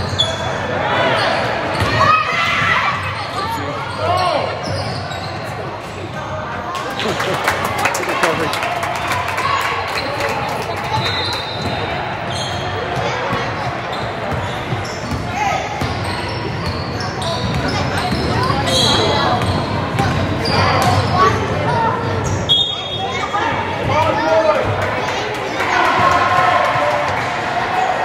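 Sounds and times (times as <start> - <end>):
sneakers squeaking: 0.0 - 7.2, 10.0 - 23.5
spectators talking: 0.0 - 28.0.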